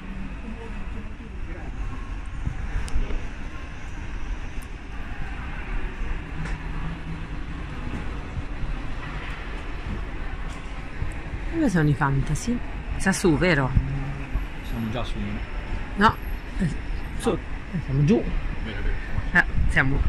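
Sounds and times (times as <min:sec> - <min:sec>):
low rumble: 0:00.0 - 0:20.0.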